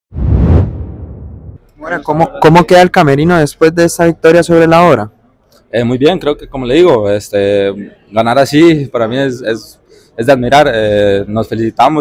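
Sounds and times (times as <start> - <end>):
whoosh with deep rumble: 0.1 - 1.6.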